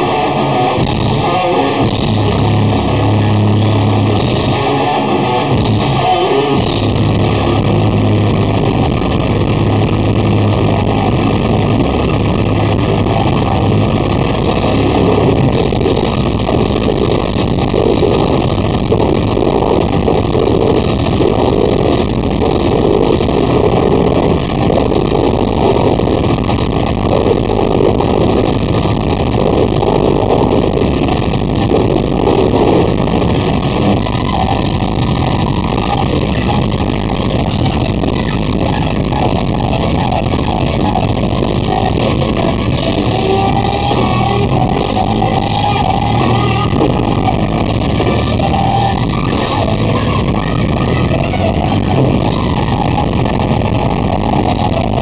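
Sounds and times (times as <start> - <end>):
metal band playing live: 0.0 - 55.0.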